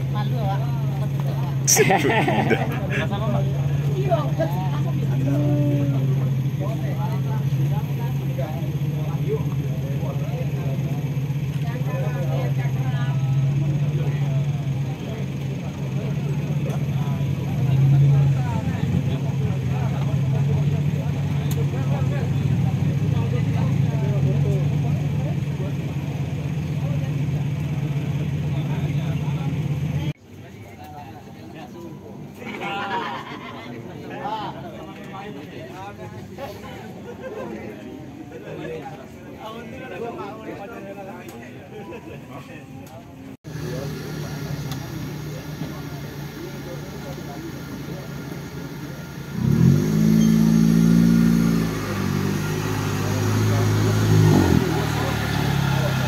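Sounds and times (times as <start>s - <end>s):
buggy engine idling: 0.0s - 30.2s, 43.1s - 56.0s.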